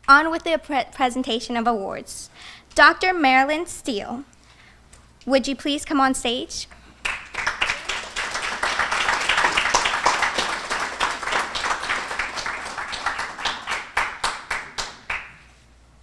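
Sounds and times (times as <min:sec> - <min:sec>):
audience applauding: 0:07.0 - 0:15.4.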